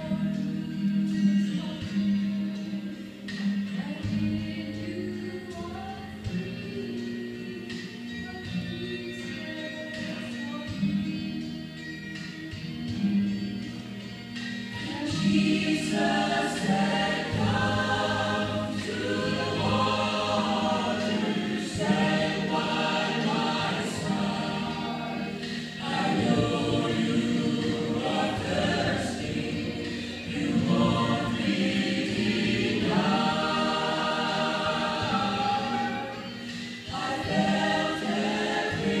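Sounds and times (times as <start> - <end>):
women singing gospel: 14.7 - 39.0.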